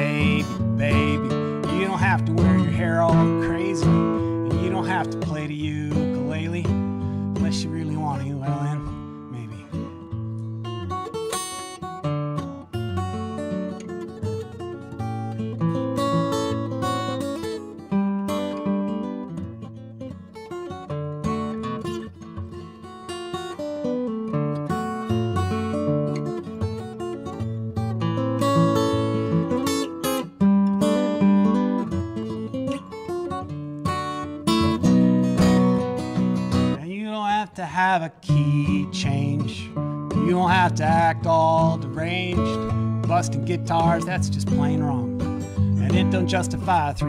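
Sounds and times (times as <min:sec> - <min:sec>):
acoustic guitar picking and strumming: 0:00.0 - 0:47.0.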